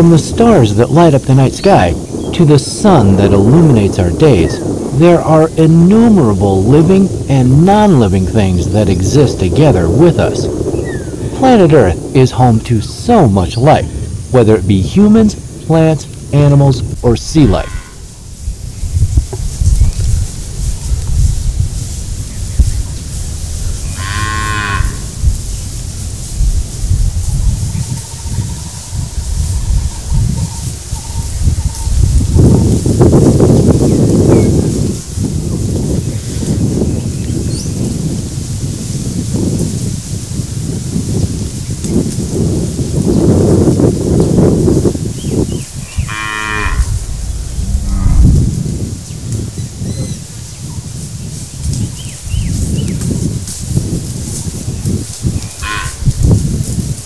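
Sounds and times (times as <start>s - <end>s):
constant low rumble: 0.0s - 36.8s, 43.9s - 51.9s
cattle mooing: 23.9s - 25.1s, 45.9s - 47.0s, 47.6s - 48.4s, 55.6s - 56.1s.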